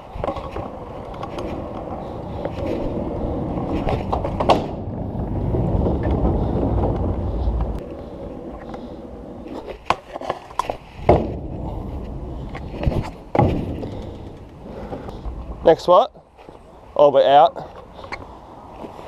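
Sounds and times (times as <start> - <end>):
scooter wheels rolling over paving: 0.0 - 19.0.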